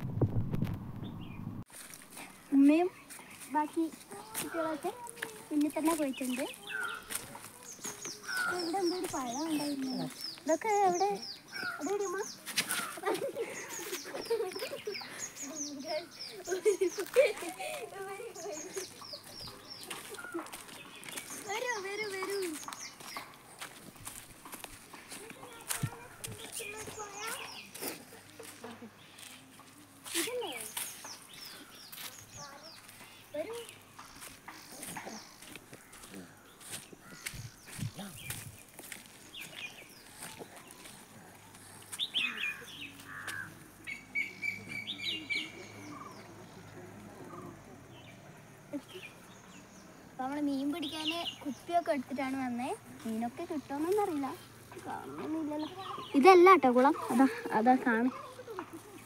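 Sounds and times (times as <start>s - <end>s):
bird chirping: 1.0s - 1.5s, 2.2s - 23.9s, 24.5s - 59.0s
footsteps on dry leaves: 1.7s - 43.8s.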